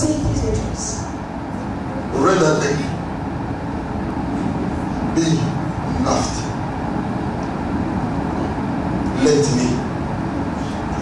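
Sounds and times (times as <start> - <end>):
low rumbling noise: 0.0 - 11.0
man speaking into a microphone: 2.1 - 3.0, 5.1 - 6.6, 9.1 - 9.9.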